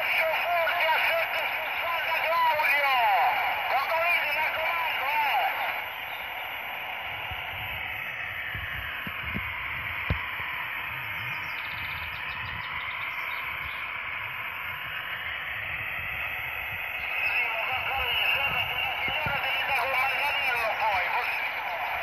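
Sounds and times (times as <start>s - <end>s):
radio static hiss: 0.0s - 22.0s.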